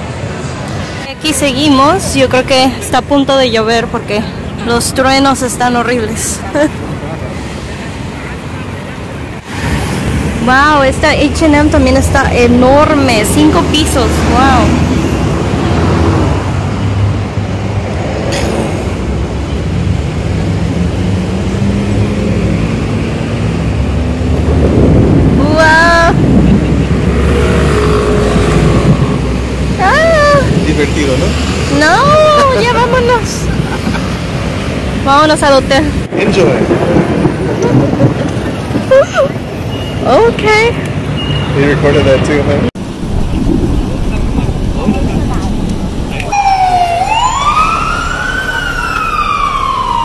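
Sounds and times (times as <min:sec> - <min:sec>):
cars and bus passing: 0:00.0 - 0:50.0
street traffic: 0:00.0 - 0:50.0
voices: 0:00.8 - 0:09.4, 0:10.4 - 0:14.9, 0:29.7 - 0:34.0, 0:38.1 - 0:47.6
person laughing: 0:33.4 - 0:34.2, 0:37.5 - 0:39.5.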